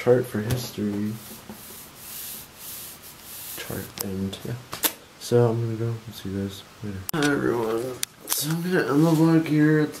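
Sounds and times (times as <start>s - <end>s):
hand rubbing paper page: 1.1s - 4.0s.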